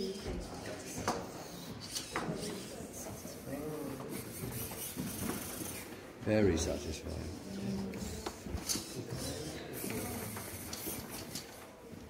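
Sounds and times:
indistinct background voices: 0.0 - 12.0.

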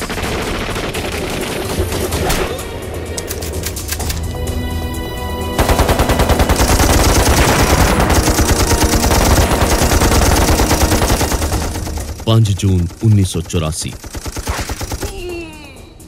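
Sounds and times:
rapid automatic gunfire: 0.0 - 2.4, 5.6 - 15.2
low music tones: 1.8 - 14.0.

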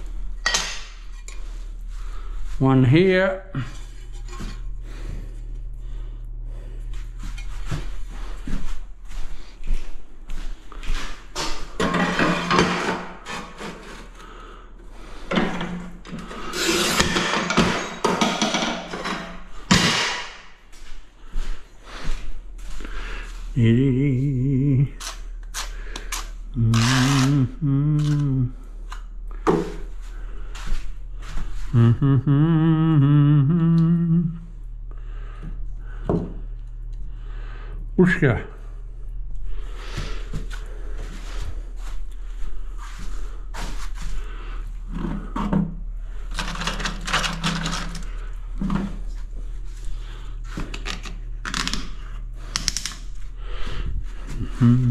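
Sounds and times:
tile and cutter scraping and knocks: 11.8 - 14.0, 15.3 - 20.0
man humming: 23.5 - 25.0, 26.5 - 28.7, 31.6 - 34.6, 54.3 - 54.9.

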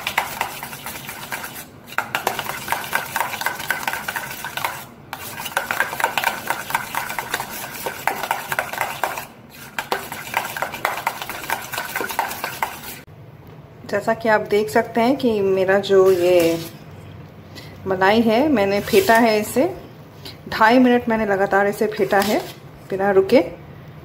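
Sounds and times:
spoon beating cream in metal bowl: 0.0 - 13.1, 21.8 - 22.6.

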